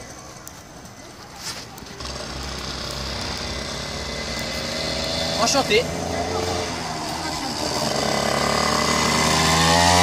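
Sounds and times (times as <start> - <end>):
dirt bike engine running: 2.0 - 10.0.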